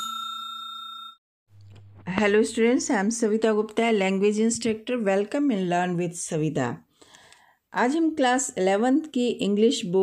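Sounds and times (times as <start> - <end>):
bell chime ringing: 0.0 - 1.2.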